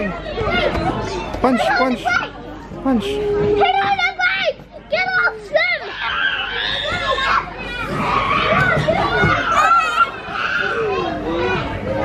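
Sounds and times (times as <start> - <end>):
young children's voices: 0.0 - 2.6, 3.2 - 12.0.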